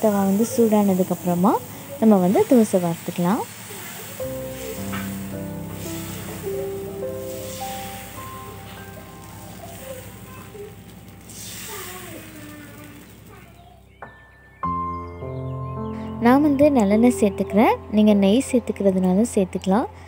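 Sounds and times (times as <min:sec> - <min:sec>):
soft instrumental music: 0:00.0 - 0:20.0.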